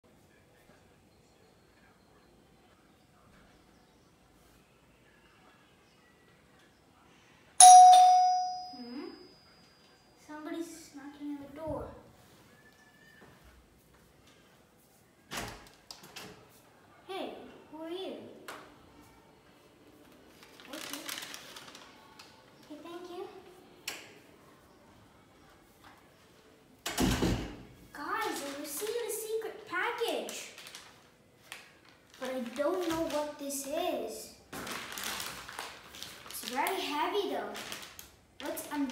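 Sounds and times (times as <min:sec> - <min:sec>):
doorbell chime ringing: 0:07.6 - 0:09.6
wooden door thudding shut: 0:26.9 - 0:27.6.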